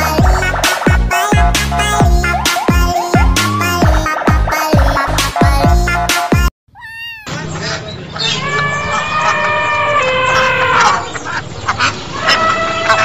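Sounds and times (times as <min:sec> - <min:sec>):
cat meowing: 0:06.7 - 0:07.5.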